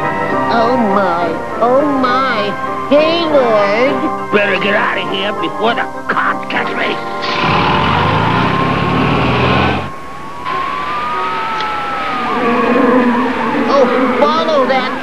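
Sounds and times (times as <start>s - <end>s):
music: 0.0s - 9.6s
cartoon engine and tyre noise: 7.2s - 10.0s
slow rising and falling tones: 7.2s - 14.3s.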